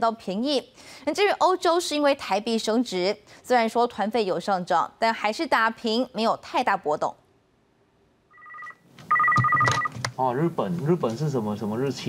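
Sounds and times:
desk telephone ringing: 0:08.3 - 0:10.0.

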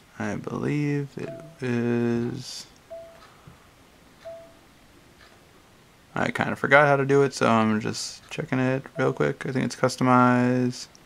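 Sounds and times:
short electronic beeps: 0:02.9 - 0:03.2, 0:04.2 - 0:04.6.

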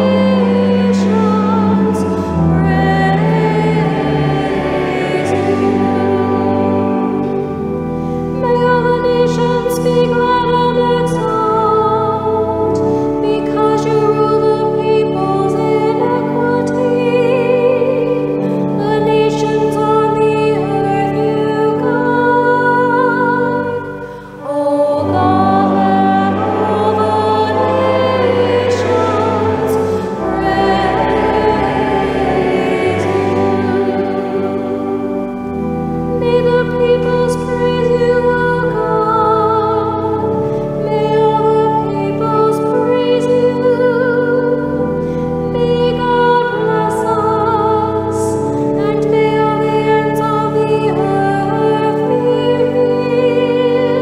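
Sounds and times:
sustained accompanying tones: 0:00.0 - 0:48.0
organ chords: 0:00.0 - 0:54.0
person singing a psalm: 0:00.0 - 0:54.0.

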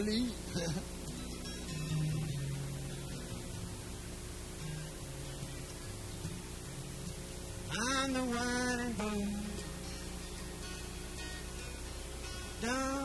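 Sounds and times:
acoustic guitar low notes: 0:00.0 - 0:13.0
electrical mains hum: 0:00.0 - 0:13.0.

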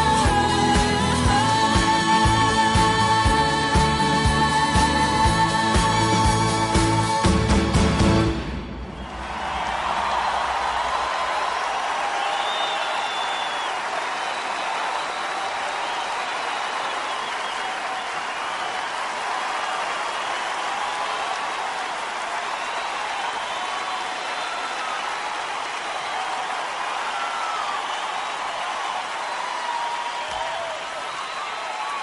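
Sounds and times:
crowd noise: 0:08.3 - 0:32.0
audience applauding: 0:08.9 - 0:32.0
faint whistles: 0:12.2 - 0:18.8.

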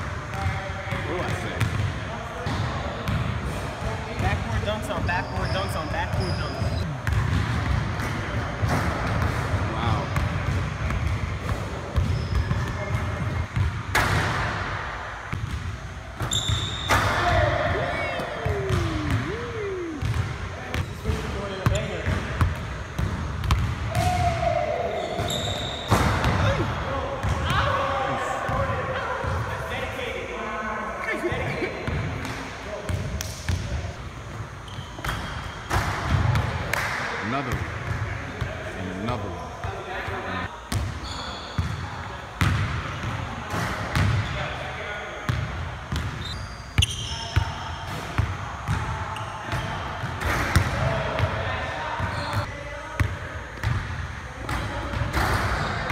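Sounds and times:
ball hitting backboard and rim: 0:07.0 - 0:14.7, 0:20.0 - 0:24.4, 0:25.1 - 0:26.5, 0:42.4 - 0:44.3.

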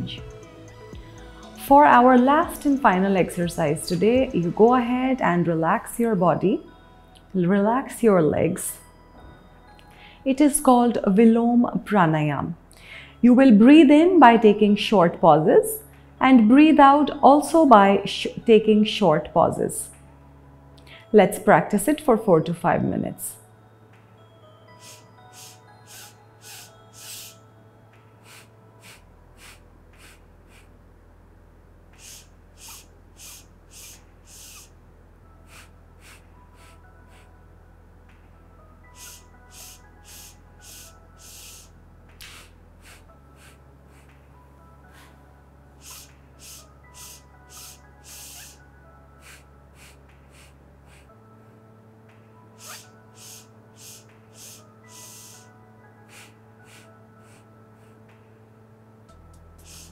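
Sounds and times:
soft music with low drone: 0:00.0 - 0:59.9
woman breathing through nose: 0:12.7 - 0:13.2, 0:24.8 - 0:27.5, 0:28.2 - 0:30.8, 0:32.0 - 0:34.7, 0:35.4 - 0:37.4, 0:38.9 - 0:44.2, 0:44.8 - 0:51.2, 0:52.6 - 0:58.1, 0:59.6 - 0:59.9.

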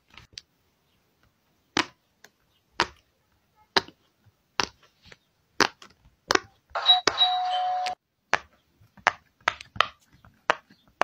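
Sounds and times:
ding-dong notification chime: 0:06.8 - 0:08.0.

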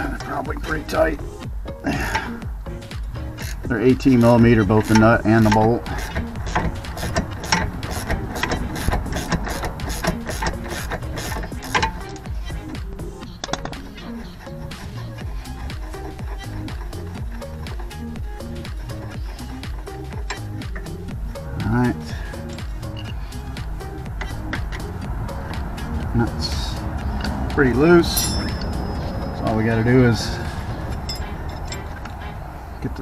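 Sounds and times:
background music: 0:00.0 - 0:33.0
wrench clicking rapidly: 0:03.4 - 0:12.8, 0:13.4 - 0:21.1.

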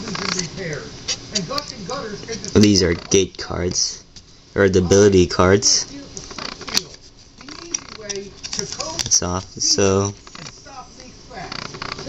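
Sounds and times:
cards being handled: 0:06.2 - 0:11.1.

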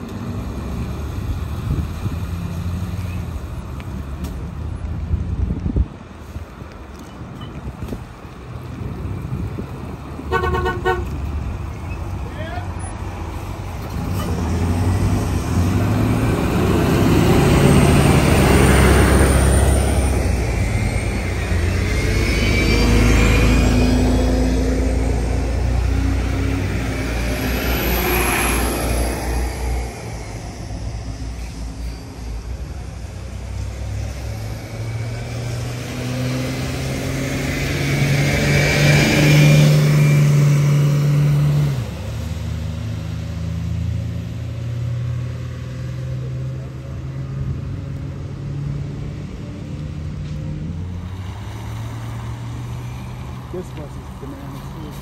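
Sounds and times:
bus engines accelerating: 0:00.0 - 0:55.0
bus whine passing: 0:00.0 - 0:55.0.

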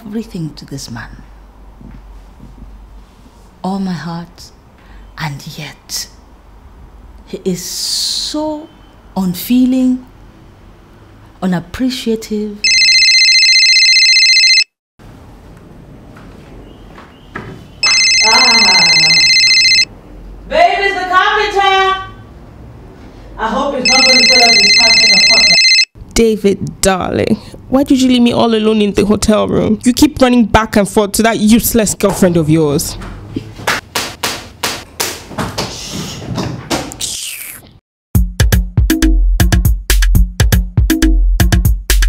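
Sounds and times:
phone ringtone electronic trill: 0:12.6 - 0:14.7, 0:17.8 - 0:19.9, 0:23.8 - 0:25.9
hand smacking person: 0:33.7 - 0:35.7.

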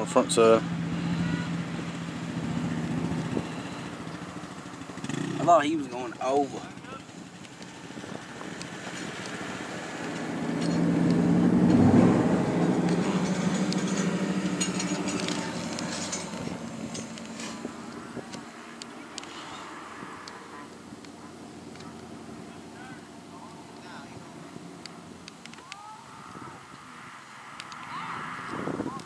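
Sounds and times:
vehicle engine running: 0:00.0 - 0:29.0.

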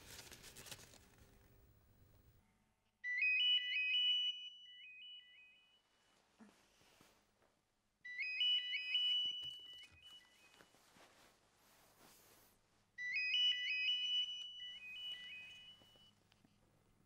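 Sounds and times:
electronic phone ringtone: 0:03.0 - 0:05.8, 0:08.0 - 0:10.7, 0:13.0 - 0:16.1.

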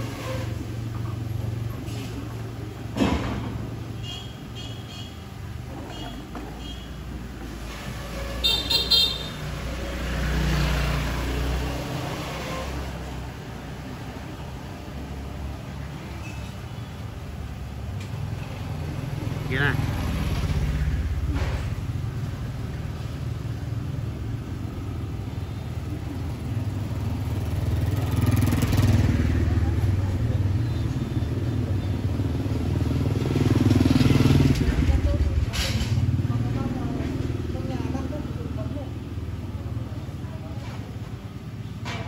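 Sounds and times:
vehicle engines passing: 0:00.0 - 0:42.0.

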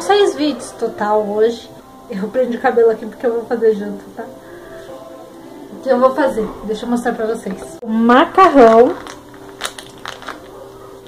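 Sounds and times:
plastic bag crinkling: 0:08.3 - 0:11.0.

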